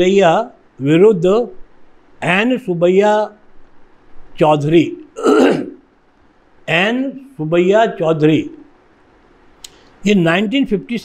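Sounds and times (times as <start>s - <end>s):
man speaking: 0.0s - 1.6s, 2.2s - 3.4s, 4.4s - 5.8s, 6.7s - 8.7s, 10.0s - 11.0s
man clearing his throat: 5.2s - 5.8s.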